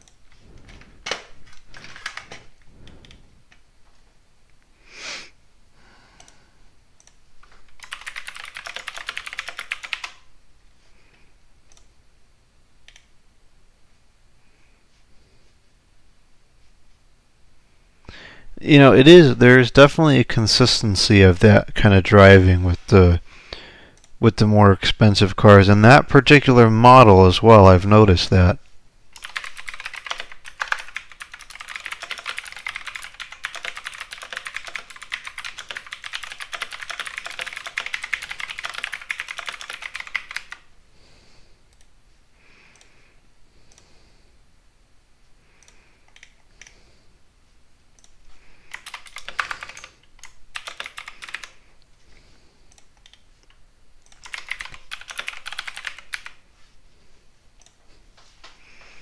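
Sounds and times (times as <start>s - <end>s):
typing on computer keyboard: 0.0s - 3.2s, 7.0s - 10.3s, 29.2s - 40.7s, 45.6s - 46.8s, 48.0s - 51.6s, 52.7s - 56.4s.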